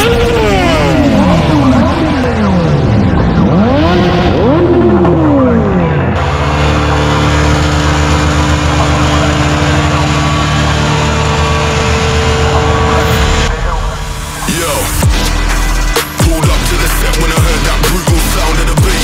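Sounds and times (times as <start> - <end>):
motorcycle at steady high revs: 0.0 - 13.2
motorcycle engines revving: 0.0 - 19.0.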